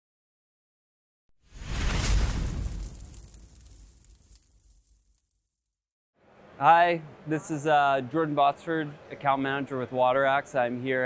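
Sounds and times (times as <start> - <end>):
deep booming whoosh: 1.5 - 4.0.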